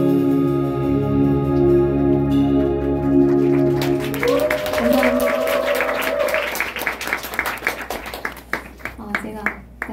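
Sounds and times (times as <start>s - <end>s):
audience applauding: 2.5s - 9.9s.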